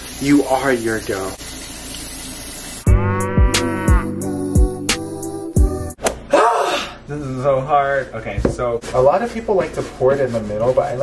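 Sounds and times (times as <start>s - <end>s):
synth music with drum beat: 2.9s - 6.0s.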